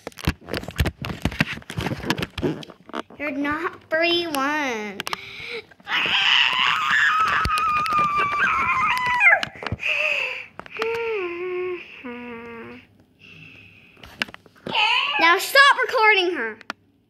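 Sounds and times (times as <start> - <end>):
child squealing and whining: 5.9 - 9.6, 14.7 - 15.5.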